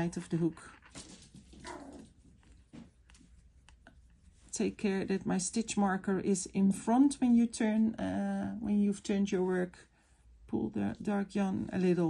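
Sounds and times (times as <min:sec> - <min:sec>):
puppy whining: 0:01.6 - 0:02.2.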